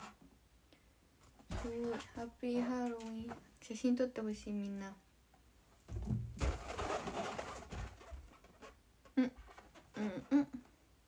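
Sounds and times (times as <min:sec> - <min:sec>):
balloon rubbing and rustling: 0:01.5 - 0:03.2, 0:06.0 - 0:10.5.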